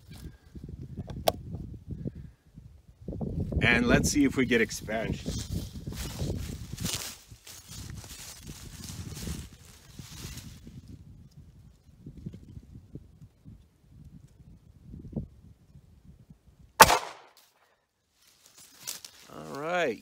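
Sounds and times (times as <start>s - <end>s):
loud pistol gunshot: 16.8s - 17.4s.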